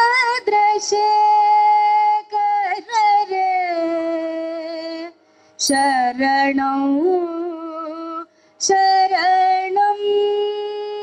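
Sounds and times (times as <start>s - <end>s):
women singing devotional song: 0.0s - 11.0s.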